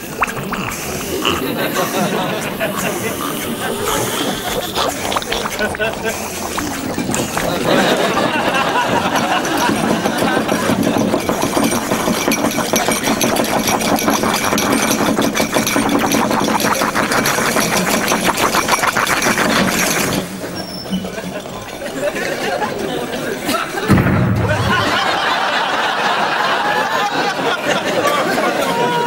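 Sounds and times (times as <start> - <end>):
glassware rattling and bubbling: 0.0 - 23.5.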